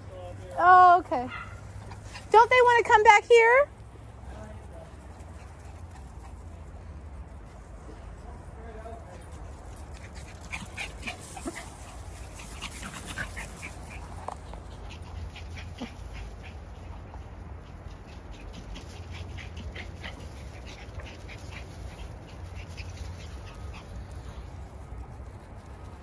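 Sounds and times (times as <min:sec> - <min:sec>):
small dogs yipping and barking: 0:00.6 - 0:03.5, 0:09.6 - 0:24.5.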